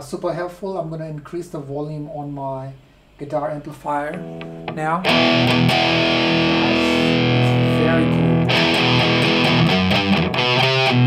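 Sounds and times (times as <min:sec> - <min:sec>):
distorted electric guitar chords: 0:04.0 - 0:11.0.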